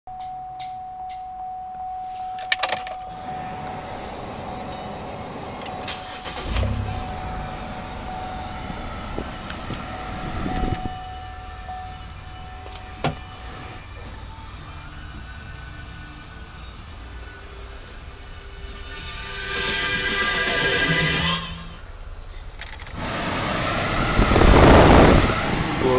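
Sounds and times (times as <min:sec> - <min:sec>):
ignition warning chime dings: 0:00.1 - 0:18.6
engine starting and idling: 0:02.5 - 0:25.9.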